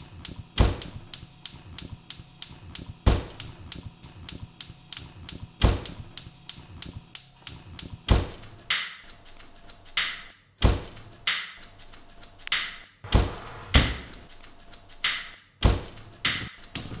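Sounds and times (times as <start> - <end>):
deep thud: 13.1 - 14.3.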